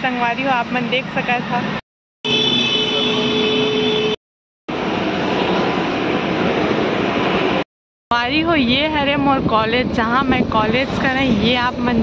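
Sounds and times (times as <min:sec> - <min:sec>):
road vehicle rushing noise: 0:04.7 - 0:07.7, 0:09.0 - 0:12.0.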